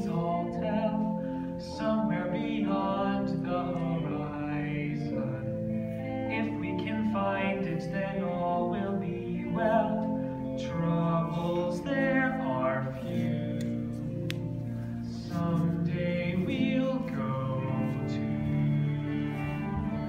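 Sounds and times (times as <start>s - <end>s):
musical theatre singing: 0.0s - 20.0s
pit orchestra playing: 15.9s - 20.0s.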